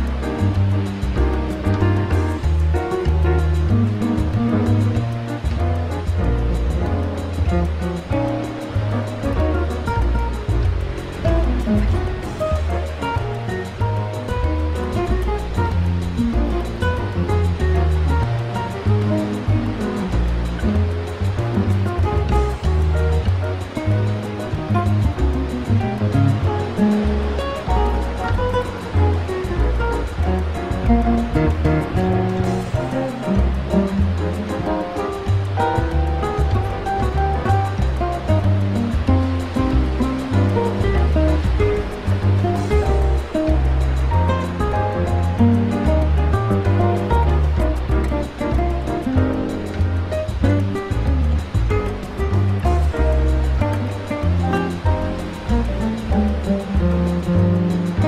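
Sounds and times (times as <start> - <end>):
bass line: 0.0 - 58.0
instrumental jazz music: 0.0 - 58.0.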